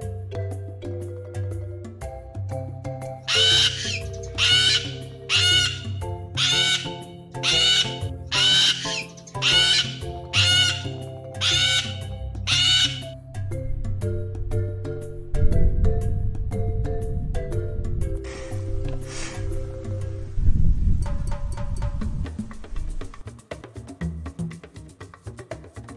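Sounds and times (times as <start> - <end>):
mallet percussion music: 0.0 - 18.8
cockatoo screeching: 3.3 - 13.2.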